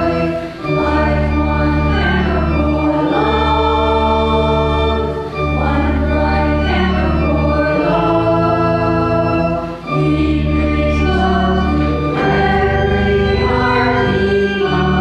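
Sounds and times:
organ chords: 0.0 - 15.0
voices singing a hymn: 0.0 - 15.0.

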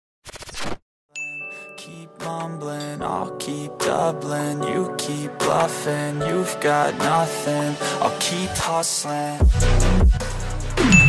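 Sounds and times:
high ding: 1.2 - 1.9.

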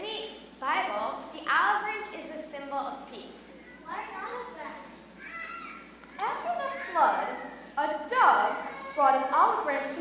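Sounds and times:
child speaking: 3.5 - 7.7.

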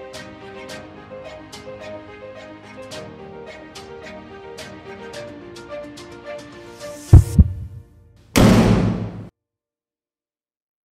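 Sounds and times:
deep drum thumps: 7.1 - 7.8, 8.4 - 9.3
loud ringing drum hit: 7.2 - 7.8, 8.4 - 9.3.

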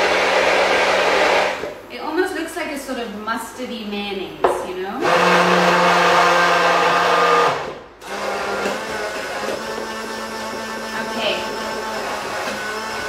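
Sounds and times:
hand blender running in glass jar: 5.0 - 13.0.

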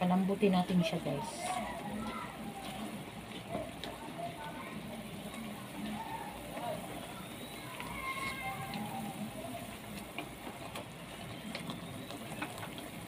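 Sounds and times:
sauce bubbling in a pot: 0.1 - 13.0.

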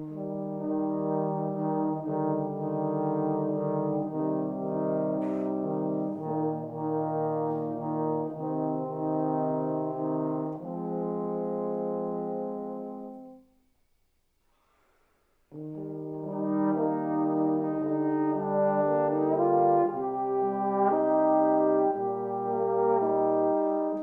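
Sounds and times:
trombones playing sustained chords: 0.0 - 13.4, 15.5 - 24.0.

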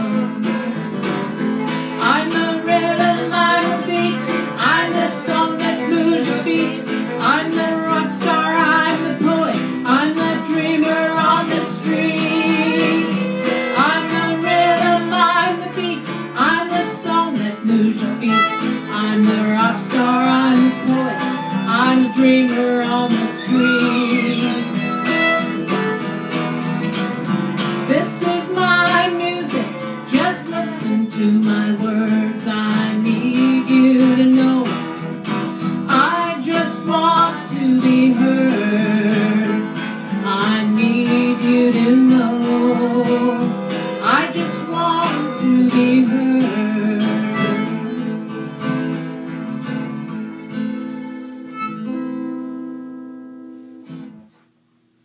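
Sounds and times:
fiddle playing melody: 0.0 - 32.4, 33.0 - 52.8
acoustic guitars strumming: 0.0 - 54.5.

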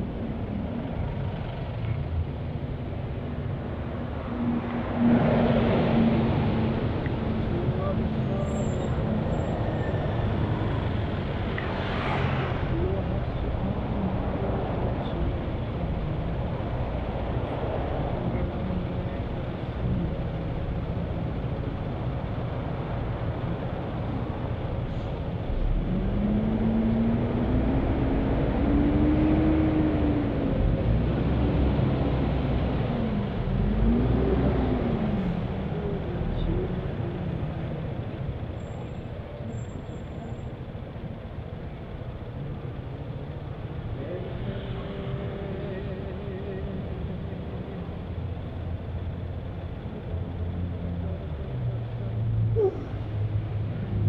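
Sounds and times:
traffic engines rumbling: 0.0 - 54.0.

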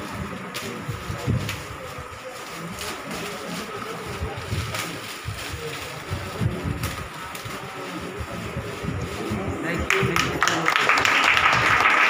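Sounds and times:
wind noise on microphone: 0.0 - 2.2, 4.0 - 10.4, 11.2 - 11.8
murmur of people: 0.0 - 12.0
microphone handling rumble: 3.9 - 10.2.

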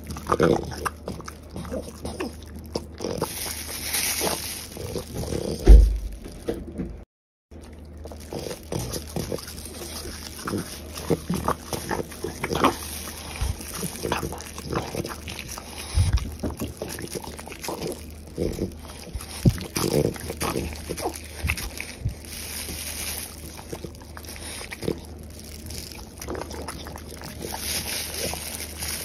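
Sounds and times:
dog chewing and smacking: 0.0 - 6.4, 7.6 - 29.0
loud low thump: 5.6 - 6.2.

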